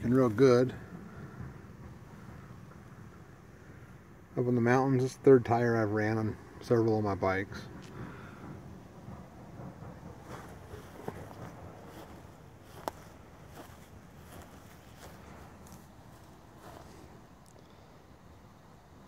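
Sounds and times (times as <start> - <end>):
footsteps on dry grass: 10.2 - 17.2.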